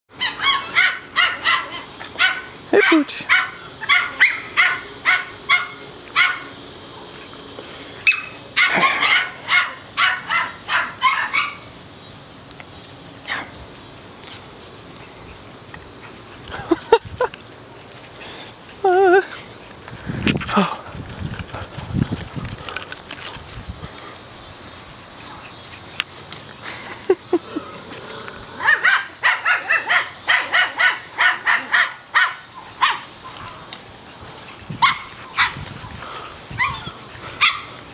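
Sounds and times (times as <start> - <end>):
puppies barking: 0.1 - 11.9, 13.2 - 17.4, 26.6 - 37.9
puppy whining: 36.5 - 37.7.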